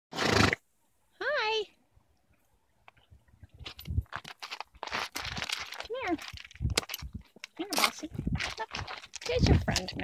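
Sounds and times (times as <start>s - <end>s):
horse snorting: 0.2s - 0.6s.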